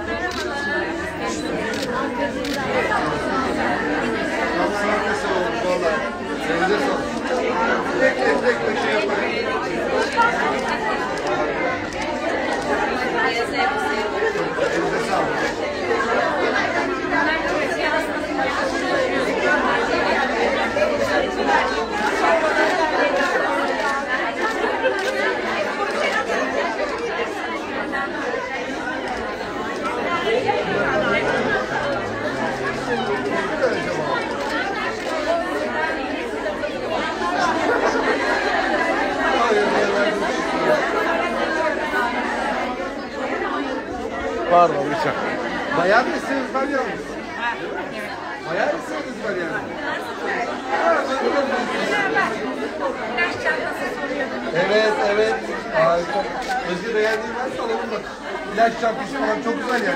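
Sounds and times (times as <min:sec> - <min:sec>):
crowd chatter: 0:00.0 - 0:59.9.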